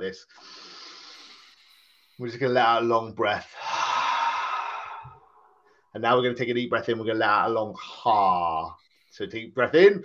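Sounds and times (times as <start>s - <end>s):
person breathing out: 0.4s - 2.2s, 3.6s - 5.8s.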